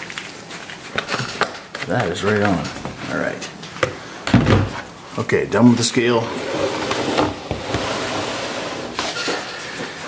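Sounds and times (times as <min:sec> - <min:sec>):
man speaking: 0:05.1 - 0:06.4.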